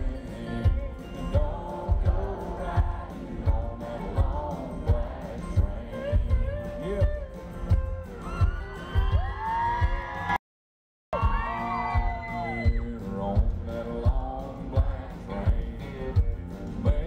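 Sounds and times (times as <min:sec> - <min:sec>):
acoustic guitar: 0:00.0 - 0:10.4, 0:11.2 - 0:17.0
live country band: 0:00.0 - 0:10.4, 0:11.2 - 0:17.0
steady low drum beat: 0:00.0 - 0:10.4, 0:11.2 - 0:17.0
audience whooping and cheering: 0:08.1 - 0:10.4, 0:11.1 - 0:13.0.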